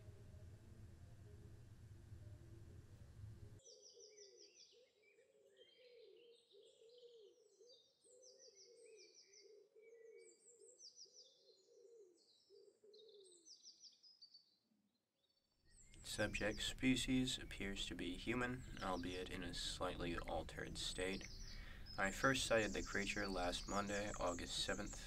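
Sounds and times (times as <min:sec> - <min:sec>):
low bird coos: 0:03.7 - 0:13.7, 0:16.0 - 0:25.0
high chirping bird trills: 0:15.8 - 0:25.0.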